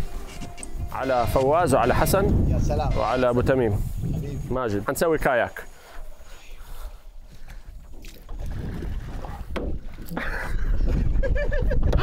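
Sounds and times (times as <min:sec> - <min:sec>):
wind rumble on microphone: 0:00.0 - 0:05.0, 0:07.3 - 0:12.0
kayak paddles splashing water: 0:05.6 - 0:11.3.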